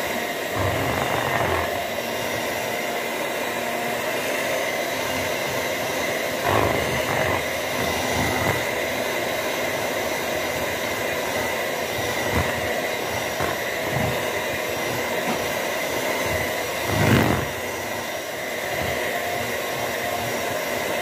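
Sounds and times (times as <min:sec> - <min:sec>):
steady whirring: 0:00.0 - 0:21.0.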